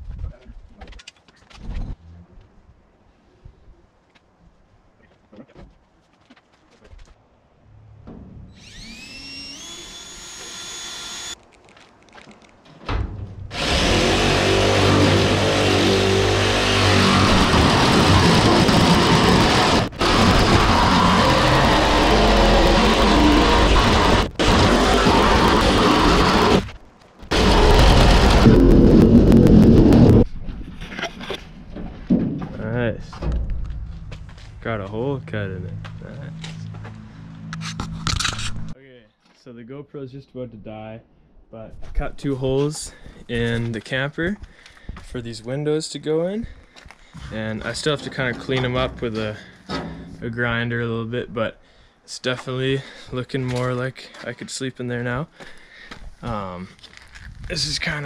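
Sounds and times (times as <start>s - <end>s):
power tool cutting metal sheet: 8.5s - 11.4s, 13.5s - 26.7s, 27.3s - 30.2s
cordless drill whine: 8.6s - 11.4s, 13.5s - 26.7s.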